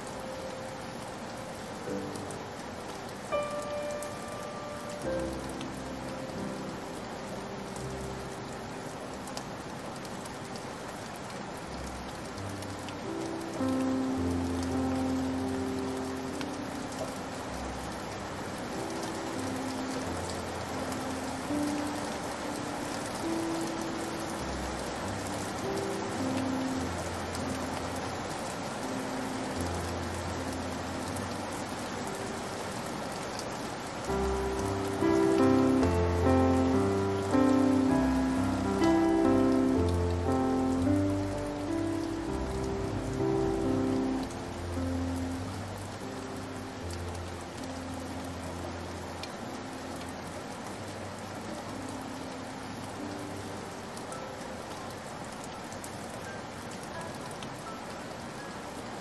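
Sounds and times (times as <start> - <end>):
soft piano notes: 0.0 - 59.0
steady rain falling: 0.0 - 59.0.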